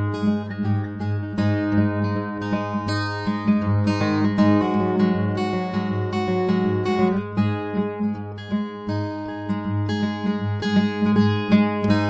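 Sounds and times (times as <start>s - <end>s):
acoustic guitar music: 0.0s - 12.0s.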